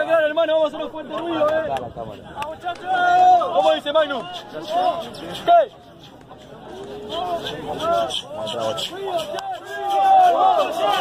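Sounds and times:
men talking: 0.0s - 11.0s
crowd murmur: 0.9s - 11.0s.

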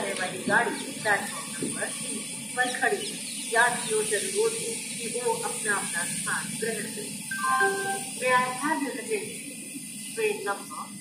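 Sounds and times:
loudspeaker announcement: 7.3s - 8.8s.

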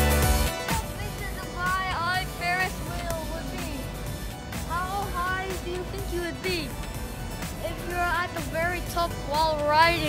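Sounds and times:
people talking and calling out: 0.5s - 10.0s
low city rumble: 0.7s - 10.0s.

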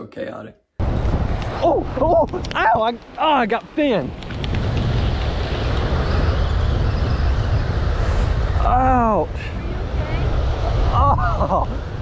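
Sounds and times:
wind rumbling on microphone: 0.8s - 12.0s
surf hissing: 0.9s - 12.0s.

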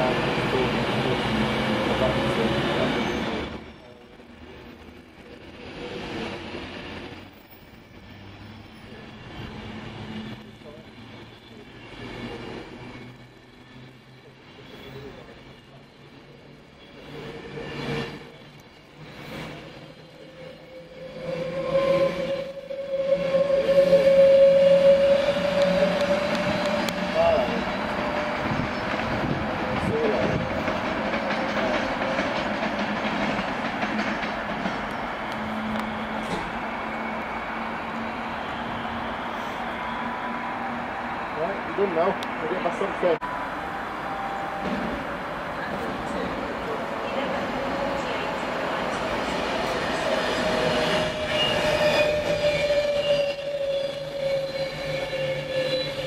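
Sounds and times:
electric train rolling past: 0.0s - 56.0s.

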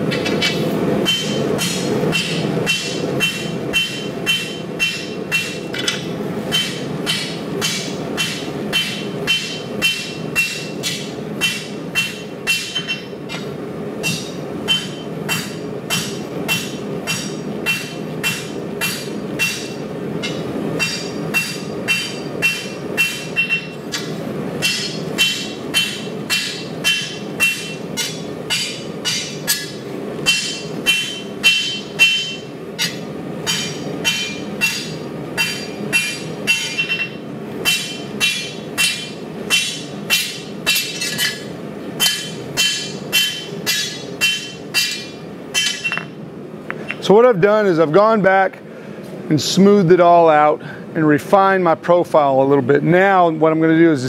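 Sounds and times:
hammer striking steel on anvil: 0.1s - 46.2s.

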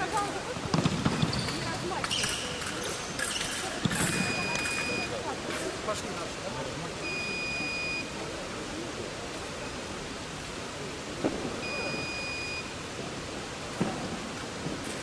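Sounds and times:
sports hall hiss: 0.0s - 15.0s
scoring machine beeps: 4.1s - 5.2s, 7.0s - 8.1s, 11.6s - 12.7s.

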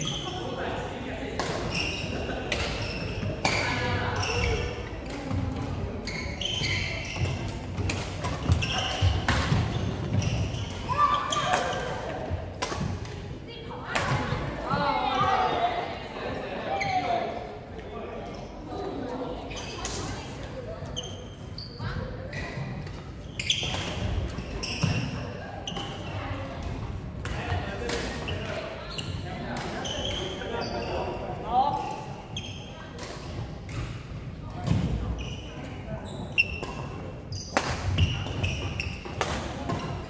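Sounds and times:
players' voices: 0.0s - 40.0s
shoes squeaking on wooden floor: 6.1s - 7.4s
rackets hitting shuttlecock: 6.5s - 13.2s, 25.7s - 28.6s, 36.4s - 40.0s.

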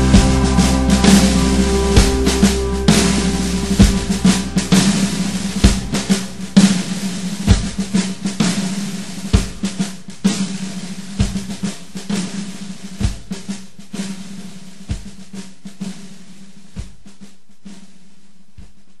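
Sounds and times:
country-rock band playing: 0.0s - 7.8s
steady low held note: 0.0s - 9.2s
snare drum rolls: 0.0s - 19.0s.

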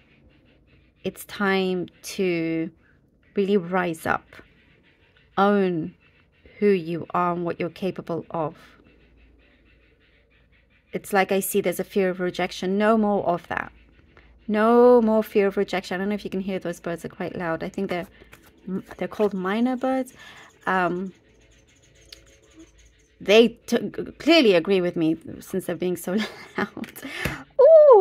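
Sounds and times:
birds chattering: 0.0s - 26.7s.

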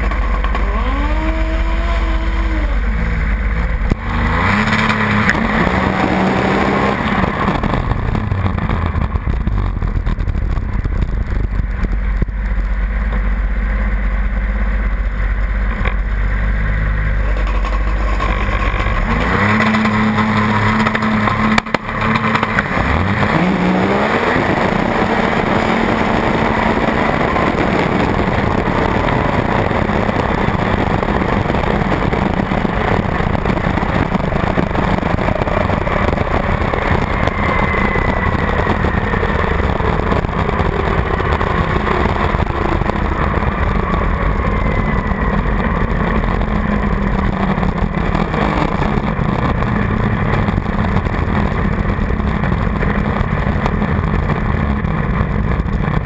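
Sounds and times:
snowmobile engine revving: 0.0s - 11.0s, 16.3s - 56.0s
rushing wind noise: 0.0s - 56.0s
whine falling in pitch: 14.9s - 56.0s.

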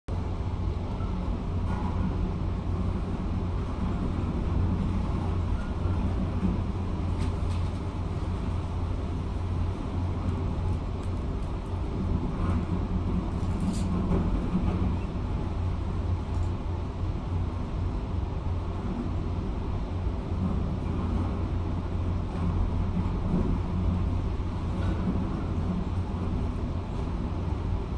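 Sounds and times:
muffled excavator engine rumble: 0.1s - 27.9s.

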